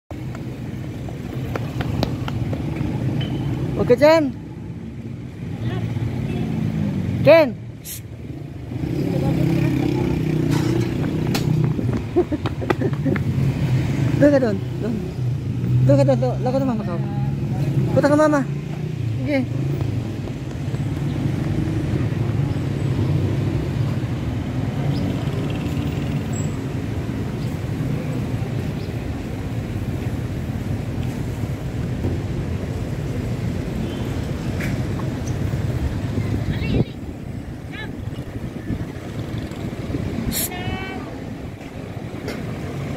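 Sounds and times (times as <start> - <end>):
road traffic: 0.1 - 42.9
vehicle engine humming: 0.1 - 42.9
wind on microphone: 35.4 - 41.7.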